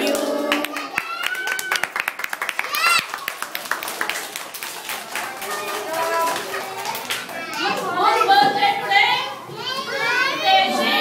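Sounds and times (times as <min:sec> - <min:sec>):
young children calling and chattering: 0:00.0 - 0:11.0.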